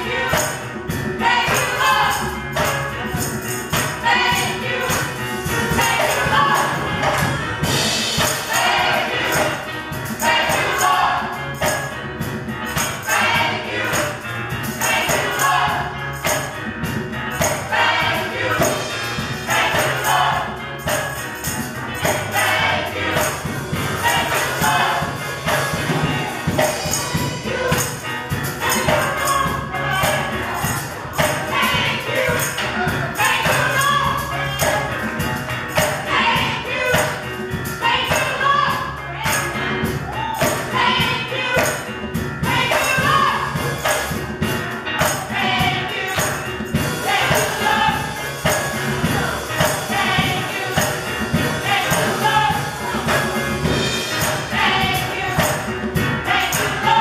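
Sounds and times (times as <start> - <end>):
gospel choir singing: 0.0 - 57.0
keyboard accompaniment: 0.0 - 57.0
percussion beat: 0.0 - 57.0
tambourine jingling: 0.0 - 57.0.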